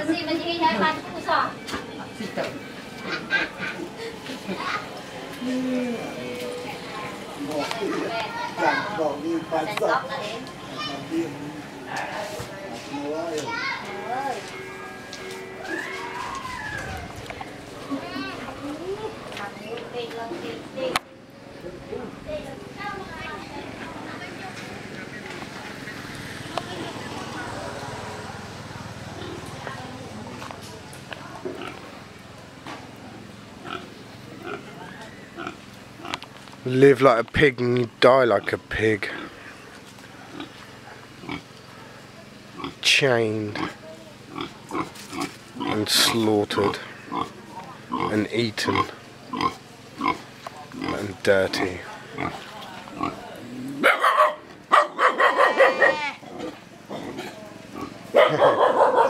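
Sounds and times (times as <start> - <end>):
pig grunting: 43.5 - 45.8, 46.6 - 53.9, 56.1 - 58.8
dog barking: 53.8 - 56.1, 58.1 - 59.0.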